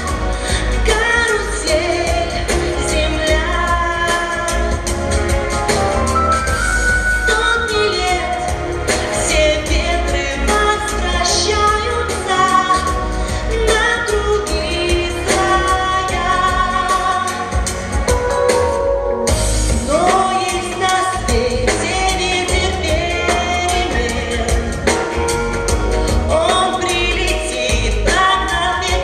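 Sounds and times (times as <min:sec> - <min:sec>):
backing track with steady beat: 0:00.0 - 0:29.0.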